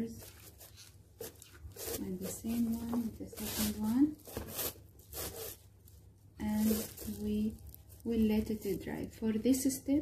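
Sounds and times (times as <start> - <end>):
short rustling scrape: 0.2 - 5.7, 6.4 - 8.0.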